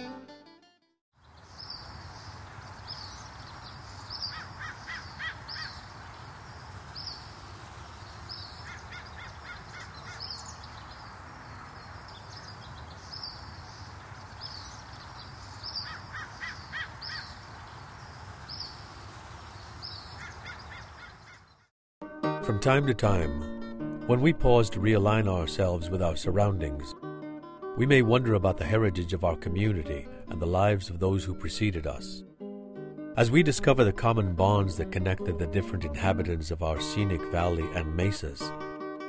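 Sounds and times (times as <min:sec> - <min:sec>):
birds chirping: 0:01.2 - 0:21.7.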